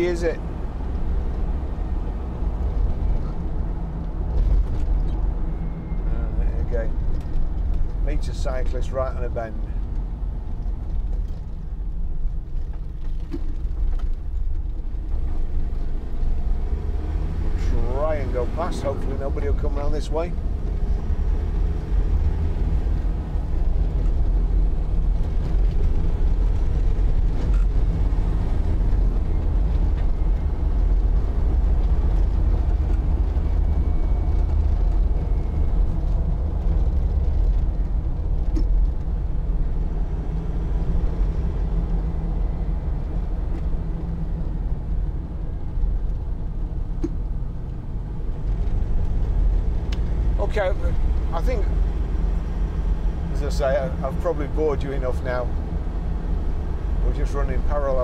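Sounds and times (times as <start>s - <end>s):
diesel engine drone inside cabin: 0.0s - 58.0s
road noise: 0.0s - 58.0s.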